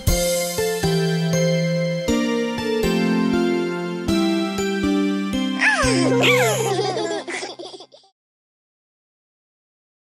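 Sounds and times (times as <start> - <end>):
children laughing: 5.6 - 8.2.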